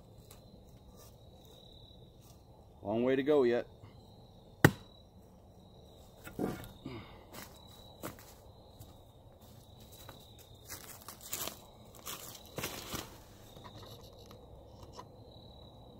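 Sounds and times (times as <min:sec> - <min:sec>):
high insect trill: 0:00.0 - 0:15.9
footsteps crunching dry leaves: 0:07.4 - 0:13.4.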